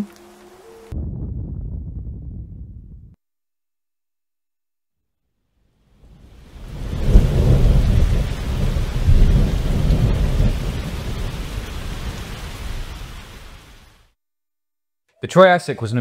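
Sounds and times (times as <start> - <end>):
steady rain: 0.0 - 1.0, 5.9 - 14.1
rolling thunder: 0.9 - 3.2, 6.0 - 13.6.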